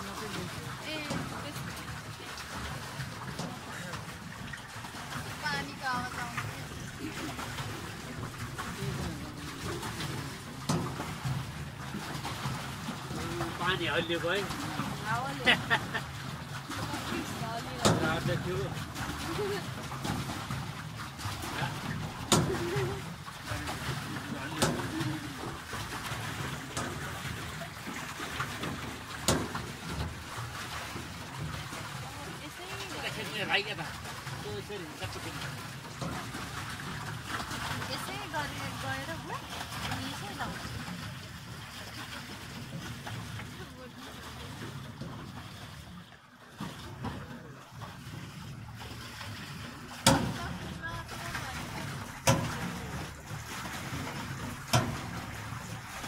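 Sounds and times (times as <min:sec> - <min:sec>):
water lapping against a boat: 0:00.0 - 0:56.0
sharp knocks: 0:50.0 - 0:50.6.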